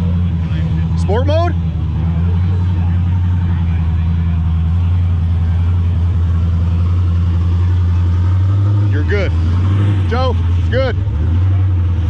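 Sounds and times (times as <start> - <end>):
race car engines idling: 0.0 - 12.0.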